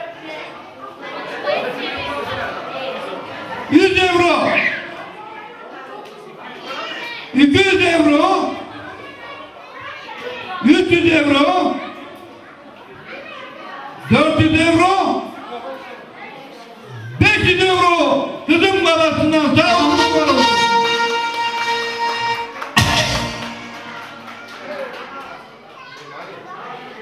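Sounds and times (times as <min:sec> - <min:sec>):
crowd chatter: 0:00.0 - 0:27.0
man calling over microphone: 0:03.7 - 0:04.8, 0:07.4 - 0:08.6, 0:14.0 - 0:15.3, 0:17.1 - 0:21.3
live band music: 0:19.5 - 0:24.6.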